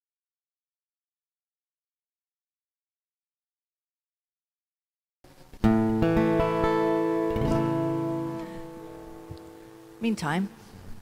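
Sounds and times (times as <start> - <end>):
acoustic guitar strummed: 5.5 - 10.0.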